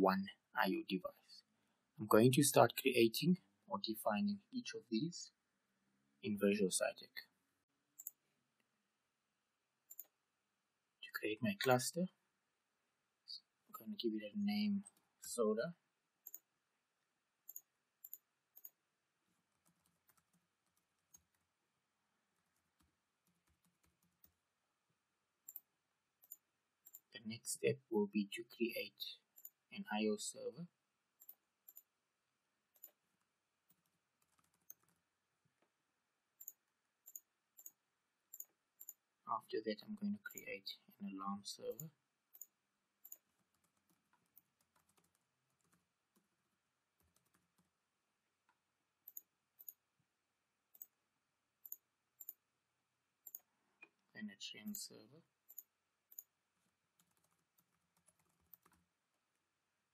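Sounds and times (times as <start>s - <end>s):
mouse clicks: 17.5s - 18.8s, 49.1s - 49.8s
keyboard typing: 19.5s - 21.4s, 22.4s - 24.4s, 33.7s - 35.0s, 41.7s - 46.3s, 47.0s - 47.7s, 55.5s - 56.3s, 57.0s - 58.9s.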